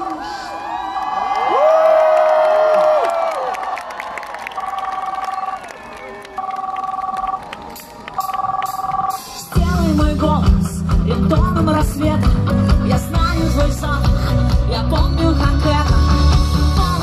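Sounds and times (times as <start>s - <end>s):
crowd cheering: 0.0s - 8.8s
long held shout: 0.5s - 3.6s
two-tone telephone ringtone: 4.6s - 5.5s, 6.4s - 7.4s, 8.2s - 9.6s.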